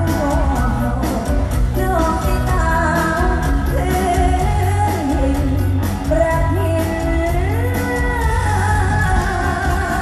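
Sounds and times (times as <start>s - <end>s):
live band heavy bass beat: 0.0s - 10.0s
woman singing into microphone: 0.0s - 10.0s.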